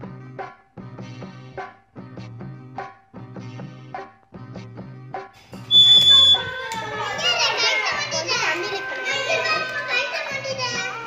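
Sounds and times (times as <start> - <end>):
background music with beat: 0.0 - 11.0
bird water whistle warbling: 5.7 - 6.6.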